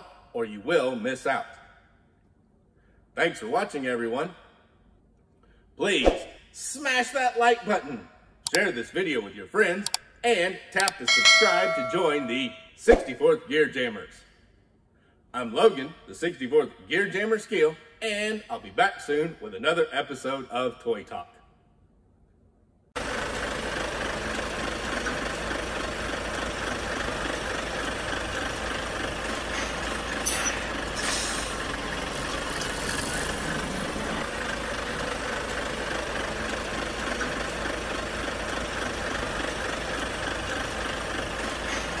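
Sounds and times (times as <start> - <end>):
heavy truck engine idling: 23.0 - 42.0
brief air hisses: 30.2 - 31.6.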